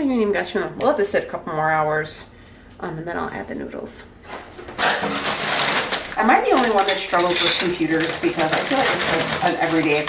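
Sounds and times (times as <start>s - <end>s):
plastic bag crinkling: 4.8s - 10.0s.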